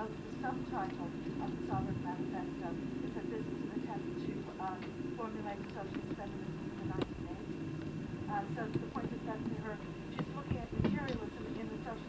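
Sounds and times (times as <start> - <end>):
indistinct speech: 0.0 - 7.5, 8.3 - 12.0
low recording hum: 0.0 - 12.0.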